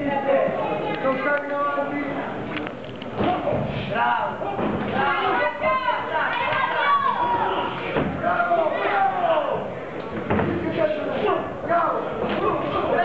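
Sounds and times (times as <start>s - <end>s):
voices calling out in echoing hall: 0.0s - 13.0s.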